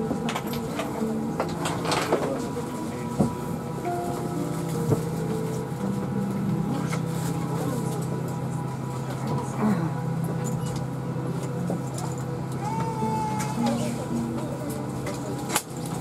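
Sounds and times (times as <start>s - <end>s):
passengers' voices: 0.0s - 16.0s.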